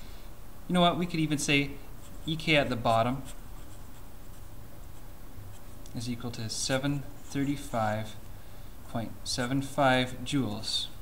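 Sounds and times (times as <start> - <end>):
marker scratching on paper: 2.0 - 5.8, 7.0 - 7.8.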